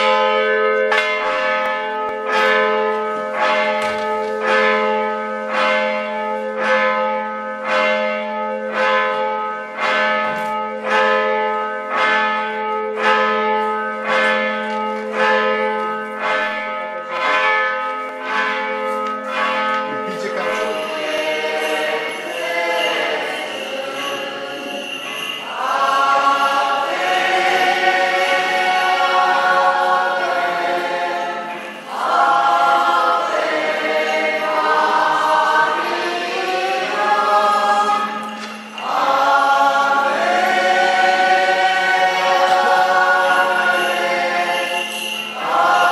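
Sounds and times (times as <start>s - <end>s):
church bell tolling: 0.0s - 45.9s
choir singing: 20.6s - 45.9s.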